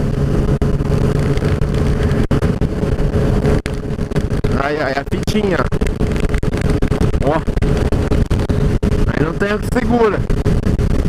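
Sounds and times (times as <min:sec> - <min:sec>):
motorcycle engine cruising: 0:00.0 - 0:11.0
wind rushing over microphone: 0:00.0 - 0:11.0.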